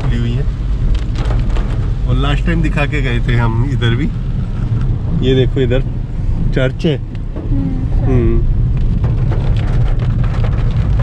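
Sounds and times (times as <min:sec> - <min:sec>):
engine and tyre rumble: 0:00.0 - 0:11.0
rain pattering on car roof: 0:00.0 - 0:11.0.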